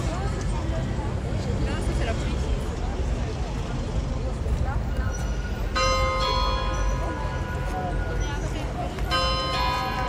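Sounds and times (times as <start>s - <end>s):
street noise: 0.0s - 10.0s
large bell ringing: 5.7s - 10.0s.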